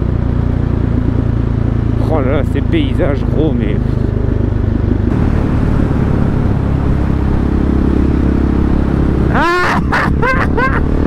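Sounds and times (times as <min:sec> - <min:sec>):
motorcycle engine riding: 0:00.0 - 0:11.0
wind noise: 0:03.8 - 0:09.4.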